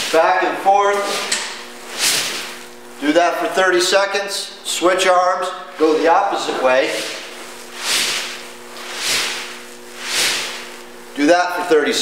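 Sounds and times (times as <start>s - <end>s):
broom swishing through air: 1.0s - 2.6s, 6.8s - 10.8s.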